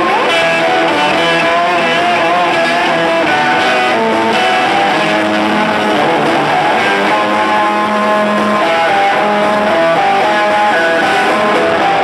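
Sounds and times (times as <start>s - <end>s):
bass guitar: 0.0s - 12.0s
electric guitar bending notes: 0.0s - 12.0s.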